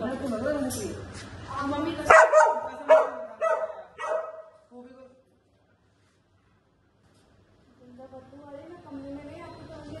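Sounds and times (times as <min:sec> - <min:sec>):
dog barking: 0:02.1 - 0:04.6.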